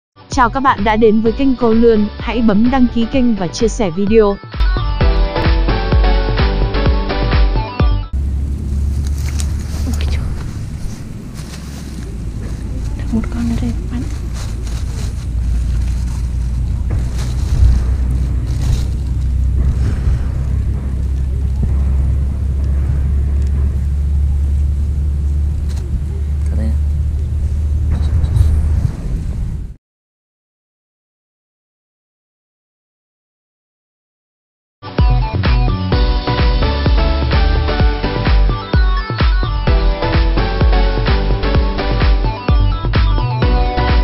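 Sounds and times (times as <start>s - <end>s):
intro music: 0.3s - 25.6s, 34.9s - 44.0s
loud low rumble: 8.1s - 29.8s
wind buffeting microphone: 8.2s - 29.8s
faint clicks and rustles: 8.4s - 21.9s, 23.4s - 28.6s.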